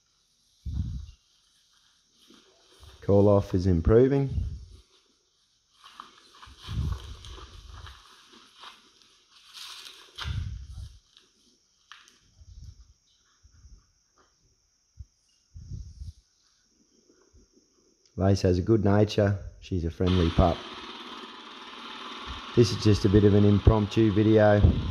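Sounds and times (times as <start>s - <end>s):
footsteps rustling dry grass: 0.0s - 3.3s, 4.6s - 12.0s
wind gusting on microphone: 0.6s - 1.2s, 4.3s - 4.7s, 6.7s - 7.2s, 15.6s - 16.2s, 24.6s - 24.9s.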